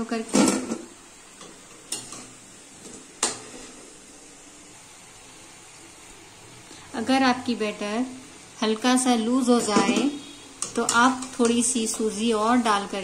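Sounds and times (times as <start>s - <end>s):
hot oil sizzling: 0.0s - 13.0s.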